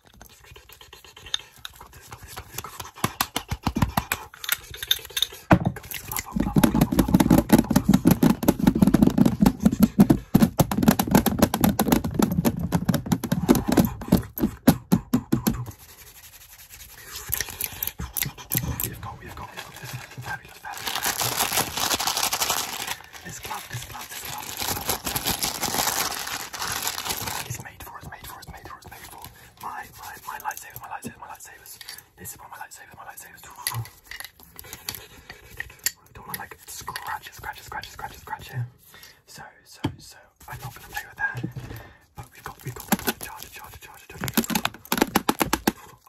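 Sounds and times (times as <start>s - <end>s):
rapid tapping and scratching: 0.0s - 31.8s, 40.4s - 46.0s
plastic crinkling: 19.2s - 27.6s, 42.4s - 45.7s.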